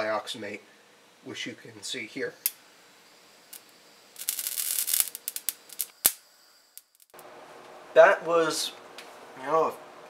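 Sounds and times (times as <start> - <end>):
crackling fizz: 2.4 - 7.2.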